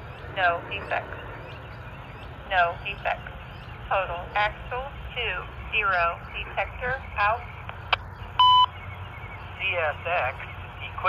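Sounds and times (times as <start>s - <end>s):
synthesized voice over radio: 0.3s - 1.5s, 2.4s - 7.8s, 9.5s - 11.0s
short electronic beep: 8.4s - 8.8s.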